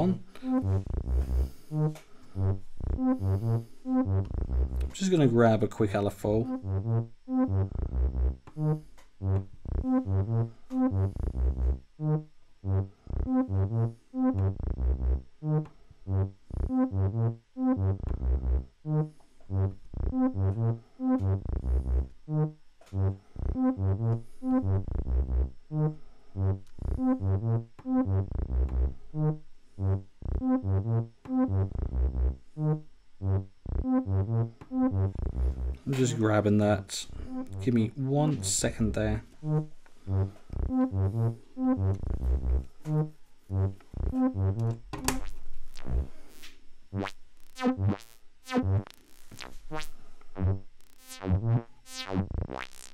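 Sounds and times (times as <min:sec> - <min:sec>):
synthesizer plucked note sequence: 0:00.0 - 0:52.9.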